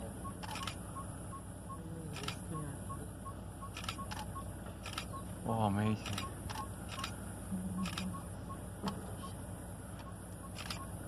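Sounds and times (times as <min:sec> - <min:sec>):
vehicle engine running: 0:00.0 - 0:11.0.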